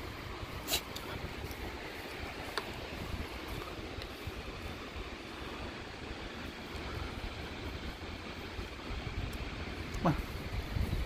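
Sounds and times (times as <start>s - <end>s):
surf hissing on beach: 0.0s - 11.0s
wind buffeting microphone: 0.0s - 11.0s.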